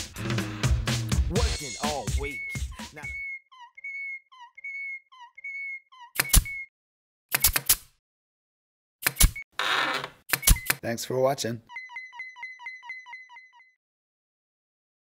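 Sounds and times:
logo music: 0:00.0 - 0:03.2
squeaky whistle-like chirps: 0:01.9 - 0:06.7, 0:11.7 - 0:13.8.

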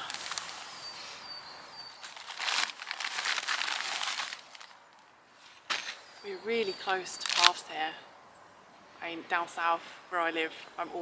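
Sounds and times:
crinkly rustling: 0:00.0 - 0:00.9, 0:02.0 - 0:05.9.

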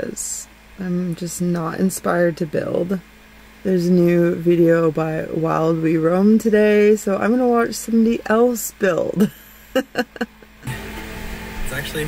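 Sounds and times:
woman speaking: 0:00.0 - 0:03.0, 0:03.6 - 0:10.4
steady background hum: 0:00.0 - 0:12.0
woman laughing: 0:09.2 - 0:10.6.

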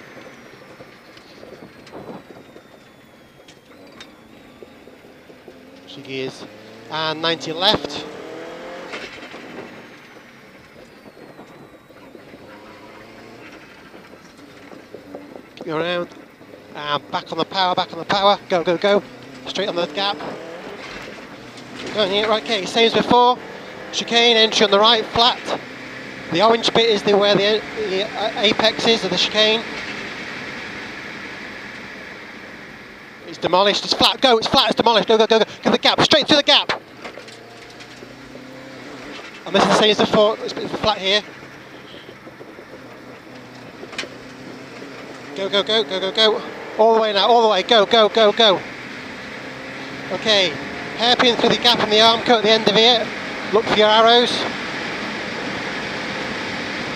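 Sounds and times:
car engine from inside cabin: 0:00.0 - 0:56.9
high whine falling in pitch: 0:00.0 - 0:56.9.

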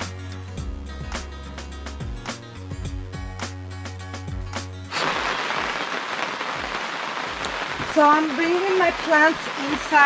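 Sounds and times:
rain on plastic cover: 0:04.9 - 0:10.0.

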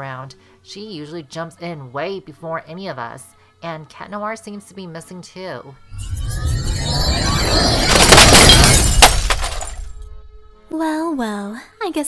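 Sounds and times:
crash and shatter: 0:05.9 - 0:10.1.

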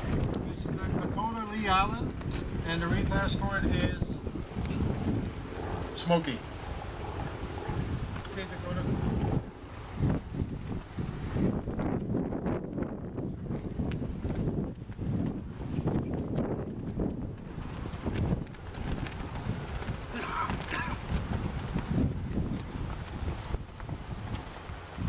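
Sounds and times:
wind buffeting microphone: 0:00.0 - 0:25.0.

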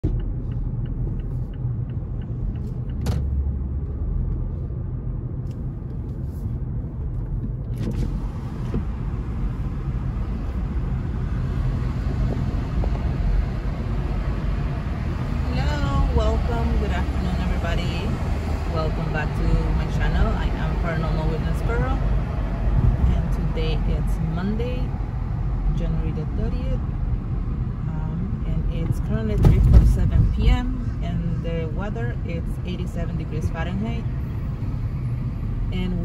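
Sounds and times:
car engine and tyre rumble: 0:00.0 - 0:36.0.

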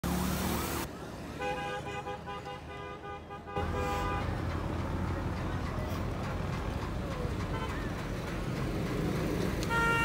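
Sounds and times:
road traffic noise: 0:00.0 - 0:10.0
vehicle horn short toots: 0:09.7 - 0:10.0.

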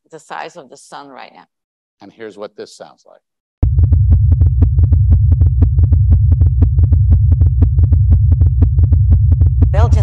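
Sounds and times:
deep drone: 0:03.6 - 0:10.0.

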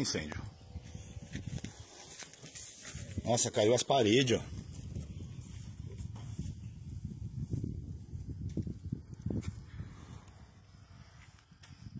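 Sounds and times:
footsteps: 0:00.8 - 0:03.5.

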